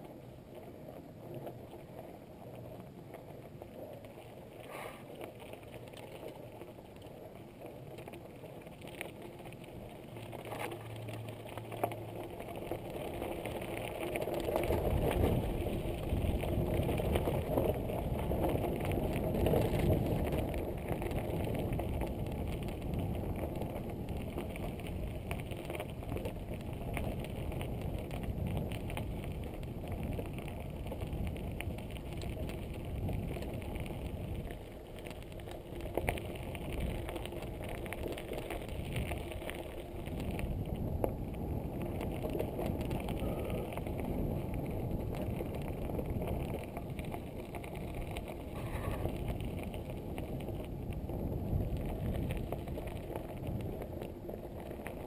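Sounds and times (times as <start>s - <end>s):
bike tyres crunching on gravel: 0.0s - 55.0s
bike frame rattling: 4.7s - 55.0s.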